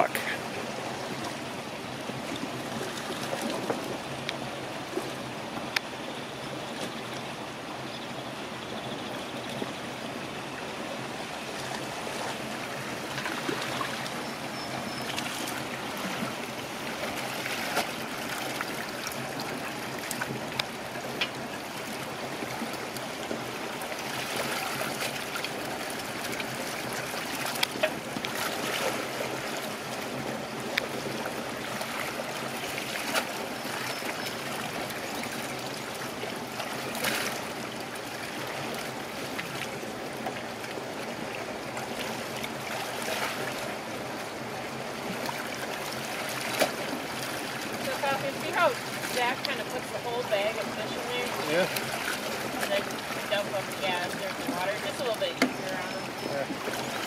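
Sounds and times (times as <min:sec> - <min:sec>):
running water splashing: 0:09.5 - 0:57.0.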